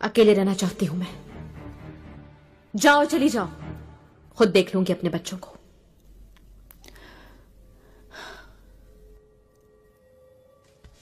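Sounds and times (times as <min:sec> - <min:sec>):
woman breathing: 0:06.8 - 0:09.2.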